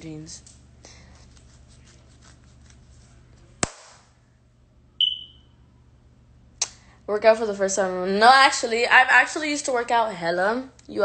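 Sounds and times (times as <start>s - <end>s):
short high electronic beep: 5.0s - 5.4s.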